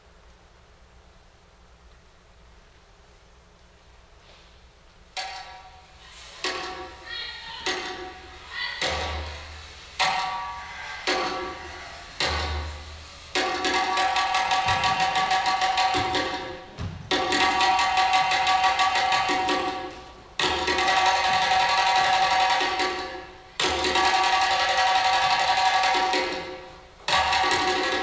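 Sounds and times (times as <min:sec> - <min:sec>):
rapid percussion strikes: 0:05.1 - 0:28.0
ringing percussion hits: 0:08.8 - 0:28.0.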